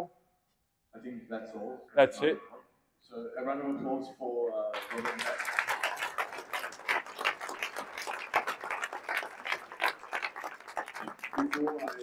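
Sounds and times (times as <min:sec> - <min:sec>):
audience applauding: 0:04.8 - 0:12.0.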